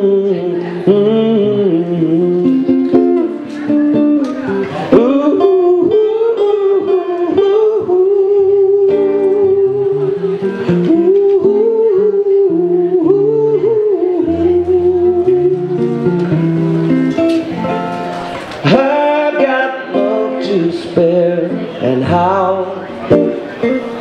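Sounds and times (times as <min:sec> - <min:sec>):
acoustic guitar: 0:00.0 - 0:24.0.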